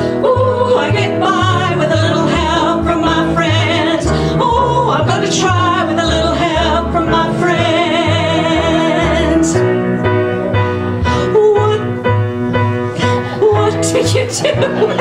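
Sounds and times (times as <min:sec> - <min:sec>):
two women singing duet: 0:00.0 - 0:09.7, 0:11.1 - 0:12.0, 0:13.0 - 0:15.0
piano accompaniment: 0:00.0 - 0:15.0.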